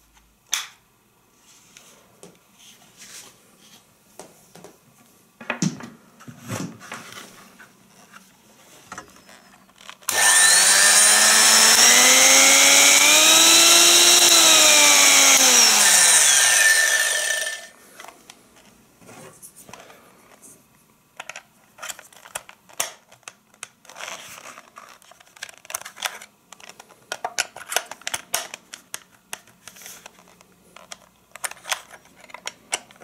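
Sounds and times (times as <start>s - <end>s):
electric hand mixer motor whining: 10.1s - 17.7s.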